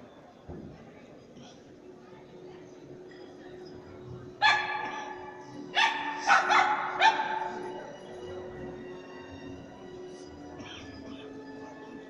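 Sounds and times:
dog barking in a hall: 4.4 - 7.8.

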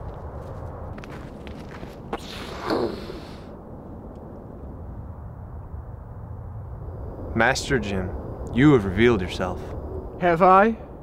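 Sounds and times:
footsteps: 0.0 - 2.6.

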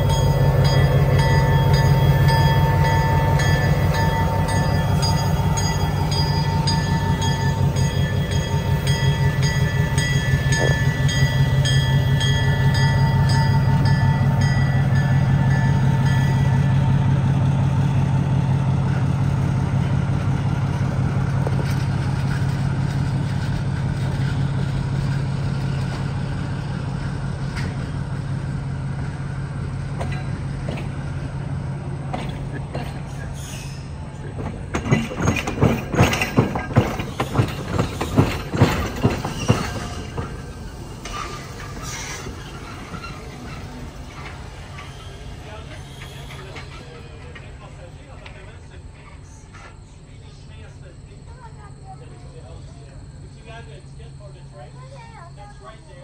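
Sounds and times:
locomotive bell ringing: 0.0 - 18.4
diesel locomotive engine drone: 0.0 - 56.0.

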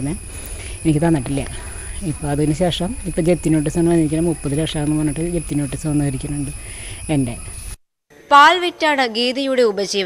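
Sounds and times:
woman speaking: 0.0 - 7.6.

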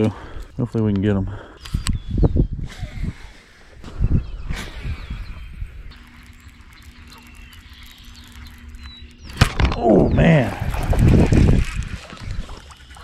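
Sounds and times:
bird chirps: 3.9 - 10.4
fishing reel humming: 4.3 - 13.0.

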